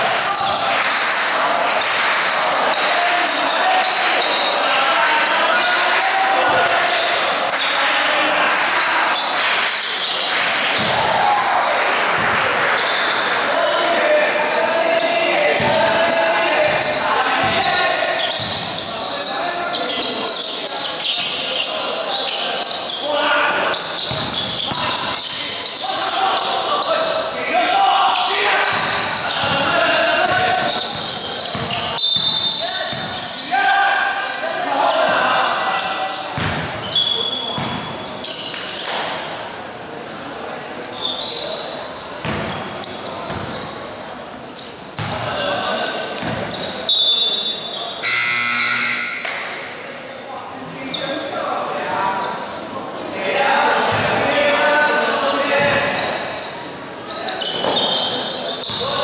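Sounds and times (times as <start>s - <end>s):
voices calling out: 0.0s - 39.3s
basketball bouncing on court: 10.7s - 11.2s, 12.1s - 12.5s, 15.6s - 15.9s, 16.7s - 18.9s, 24.0s - 25.0s, 28.6s - 33.2s, 36.4s - 36.9s, 37.5s - 38.0s, 42.2s - 42.7s, 43.3s - 43.6s, 45.0s - 45.3s, 46.2s - 46.6s, 53.9s - 54.2s, 55.6s - 56.1s.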